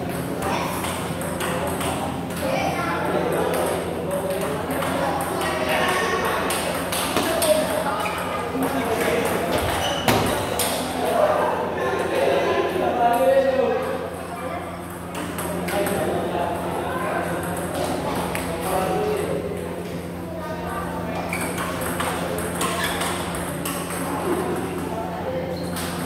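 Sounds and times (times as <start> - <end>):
murmur of voices: 0.0 - 26.0
table tennis ball clicking: 0.8 - 2.4.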